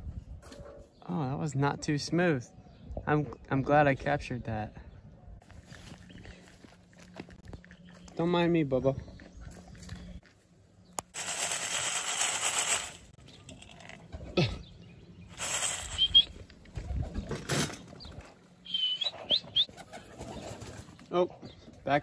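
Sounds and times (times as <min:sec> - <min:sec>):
pigeon wings flapping: 0:11.2 - 0:13.1, 0:15.4 - 0:17.1
high rising bird chirps: 0:14.7 - 0:16.4, 0:18.6 - 0:19.7.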